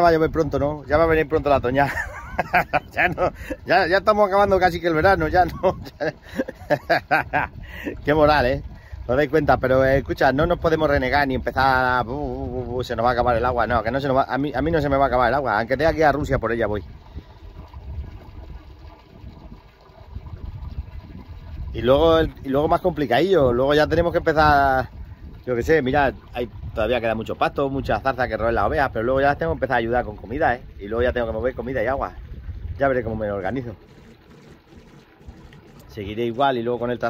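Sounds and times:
water trickling into trough: 0:00.0 - 0:37.0
low fluttering rumble: 0:16.8 - 0:22.4, 0:23.4 - 0:36.4.

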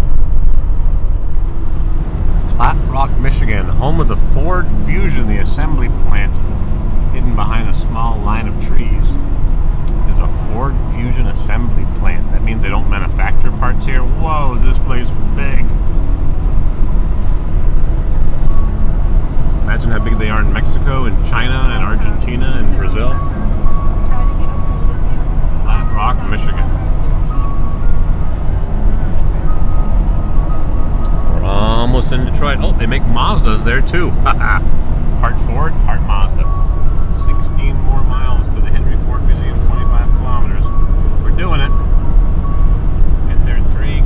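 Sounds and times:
road and engine rumble: 0:00.0 - 0:44.0
voices: 0:02.4 - 0:09.2, 0:09.9 - 0:15.7, 0:19.4 - 0:42.1, 0:43.1 - 0:44.0.

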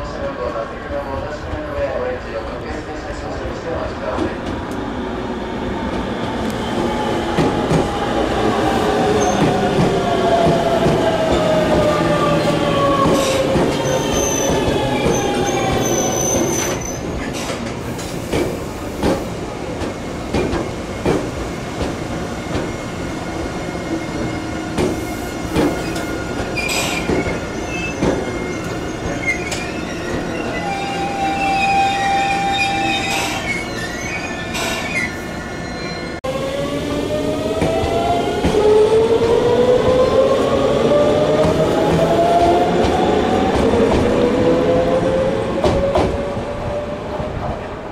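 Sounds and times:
high wheel squeals: 0:26.6 - 0:36.2.

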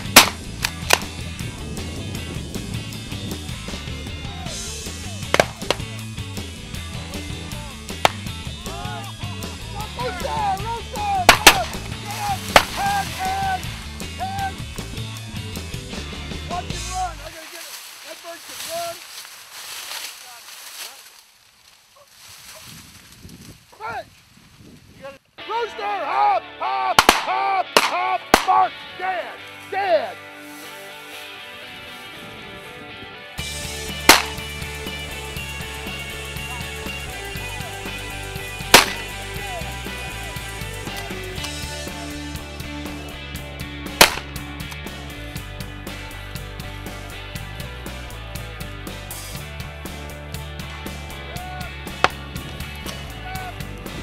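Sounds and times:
rock music with steady beat: 0:00.0 - 0:17.3, 0:26.4 - 0:54.0
shotgun shots: 0:00.1 - 0:01.1, 0:05.3 - 0:05.8, 0:11.3 - 0:11.8, 0:12.5 - 0:13.0, 0:27.0 - 0:28.5, 0:34.1 - 0:34.4, 0:38.8 - 0:39.1, 0:44.0 - 0:44.4.

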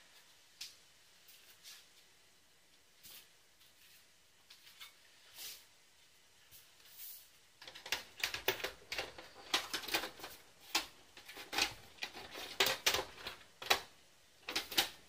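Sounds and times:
computer cover clicking and rattling: 0:07.6 - 0:15.0.

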